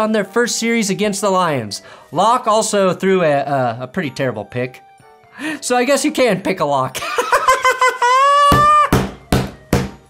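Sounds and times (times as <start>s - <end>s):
man shrieking with laughter: 7.0s - 9.0s
hand pounding wooden desk: 8.5s - 10.0s.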